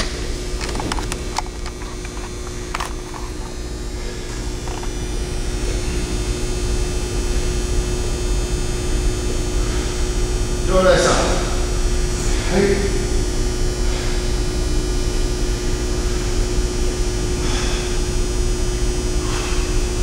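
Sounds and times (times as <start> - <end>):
steady low hum: 0.0 - 20.0.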